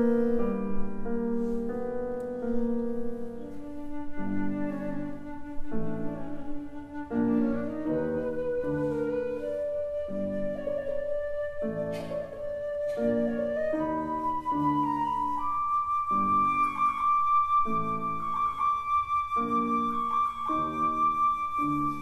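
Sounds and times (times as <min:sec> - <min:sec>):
piano chords: 0:00.0 - 0:22.0
flute notes with vibrato: 0:03.3 - 0:22.0.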